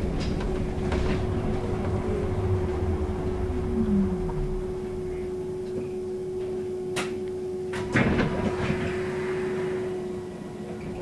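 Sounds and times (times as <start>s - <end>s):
rush of noise: 0.0s - 6.0s
bus ride hum and road noise: 0.0s - 11.0s.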